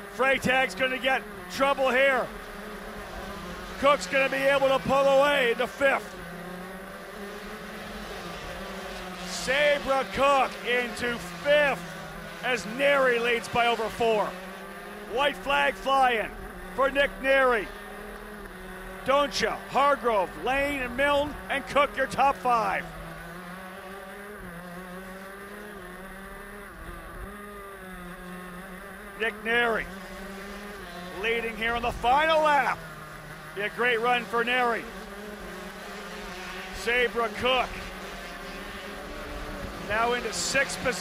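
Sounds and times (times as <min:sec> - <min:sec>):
kart engine running at speed: 0:00.0 - 0:41.0
wind and track noise: 0:00.0 - 0:41.0.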